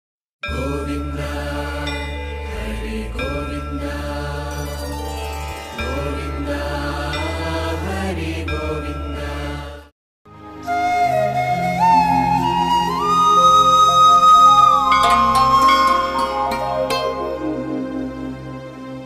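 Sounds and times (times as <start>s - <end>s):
chanted mantra: 0.5s - 4.8s
ringing tones: 14.4s - 17.4s.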